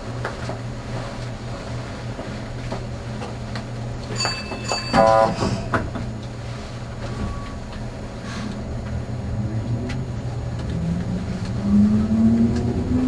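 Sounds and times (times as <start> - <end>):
train low hum: 0.0 - 13.0
loud train signal blast: 4.2 - 5.8.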